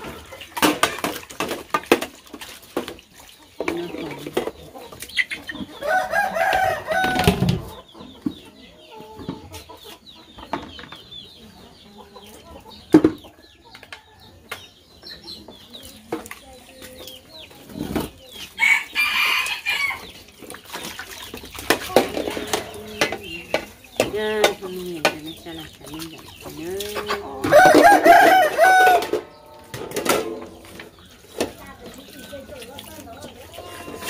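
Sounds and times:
dishes and buckets clinking: 0.0s - 34.0s
rooster crowing: 5.8s - 7.5s, 27.5s - 29.2s.

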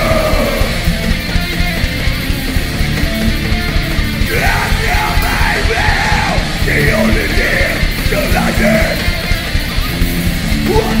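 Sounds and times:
yelled lead vocal: 0.0s - 2.5s, 3.1s - 11.0s
distorted electric guitar: 0.0s - 11.0s
fast drumming: 0.0s - 11.0s.

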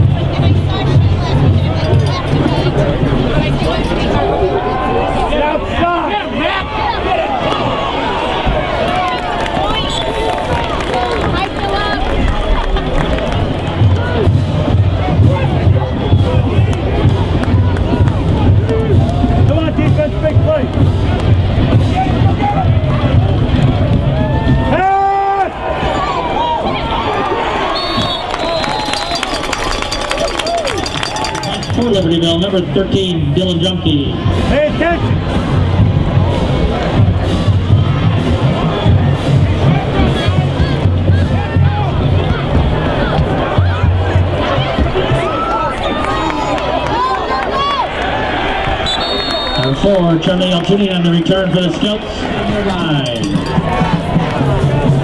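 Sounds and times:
music: 0.0s - 4.2s, 13.0s - 25.0s, 29.0s - 46.6s, 52.5s - 55.0s
crowd talking and shouting: 0.0s - 55.0s.

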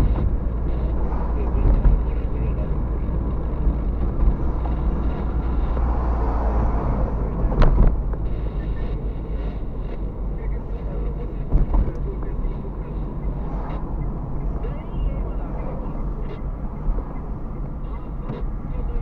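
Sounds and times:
car cabin road rumble: 0.0s - 19.0s.

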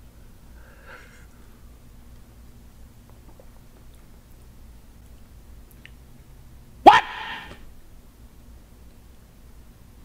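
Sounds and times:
man shouting: 6.8s - 7.6s.

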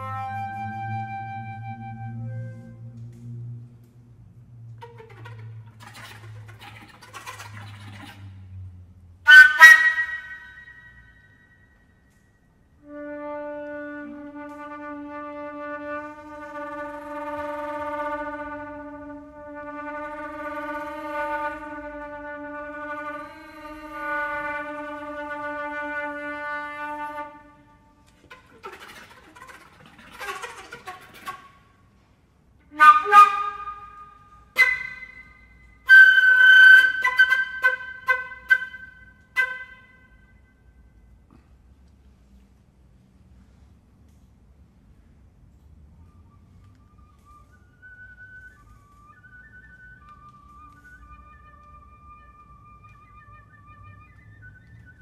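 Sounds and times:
flute long low note: 0.0s - 6.6s, 8.6s - 11.8s, 12.8s - 28.0s, 32.6s - 40.6s, 46.0s - 55.0s
short sharp flute notes: 32.6s - 40.6s.

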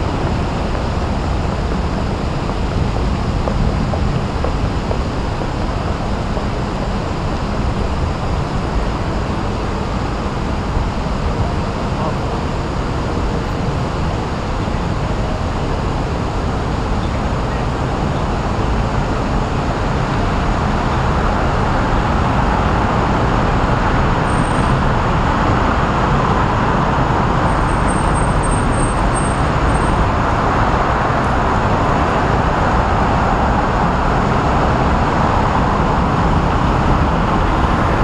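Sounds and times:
city road traffic noise: 0.0s - 38.0s.

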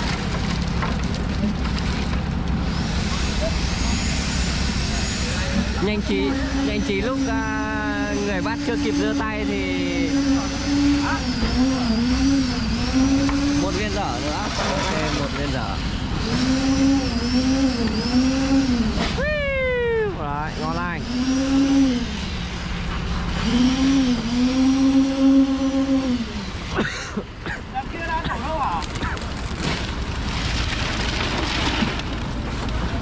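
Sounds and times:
motor running with dipping pitch: 0.0s - 33.0s
person shouting: 19.2s - 20.2s.

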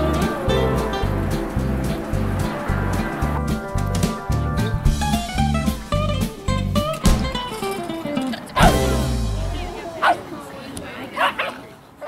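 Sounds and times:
people's voices: 0.0s - 3.4s, 6.7s - 12.0s
dog barking: 8.6s - 8.8s, 10.0s - 10.2s, 11.2s - 11.7s.

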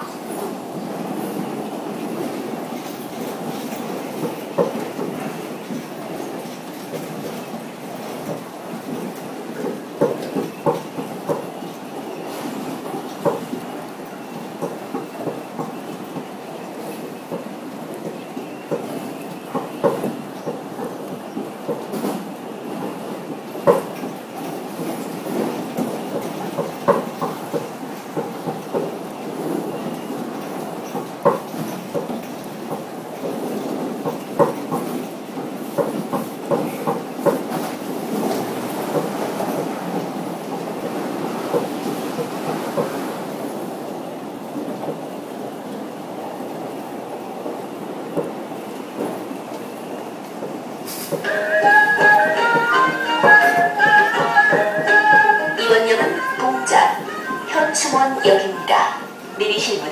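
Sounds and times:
subway train rumble: 0.0s - 59.9s
wheels clacking over rails: 50.3s - 58.7s.

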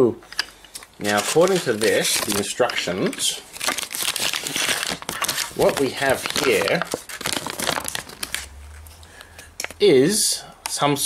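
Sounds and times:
paper leaflet crinkling: 0.7s - 9.3s.

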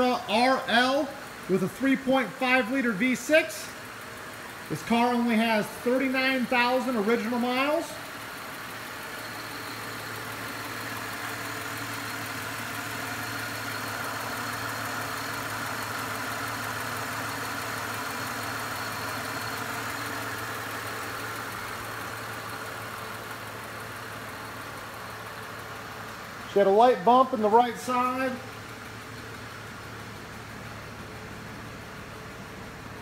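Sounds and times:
car engine idling: 0.0s - 33.0s.

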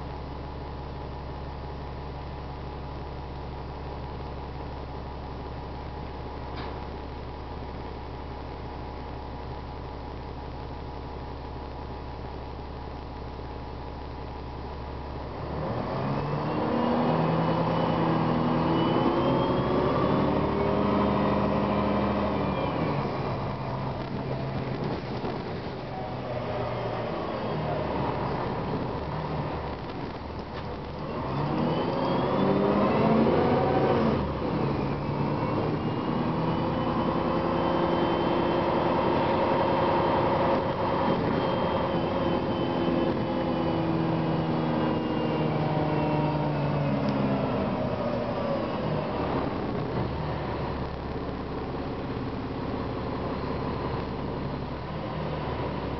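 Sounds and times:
bus diesel engine: 0.0s - 55.9s.

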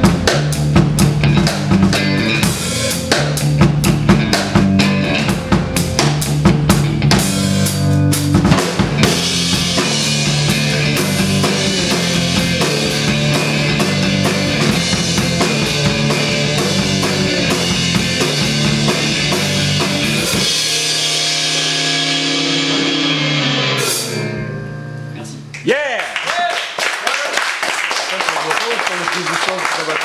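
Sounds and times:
electric guitar: 0.0s - 25.6s
drum kit: 0.0s - 25.7s.

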